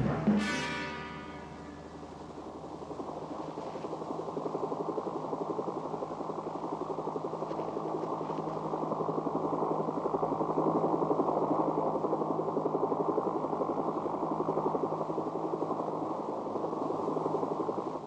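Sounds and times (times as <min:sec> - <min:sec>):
helicopter engine and rotor: 0:01.8 - 0:15.5.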